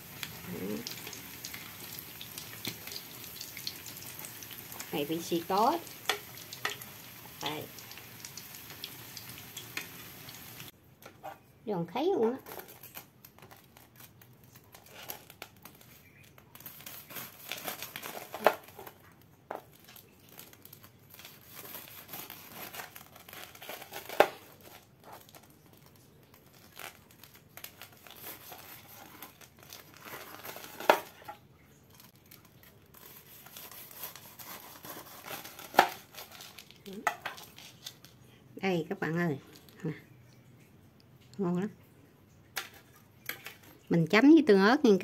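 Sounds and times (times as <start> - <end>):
knife sawing through crispy crust: 33.0 - 36.5.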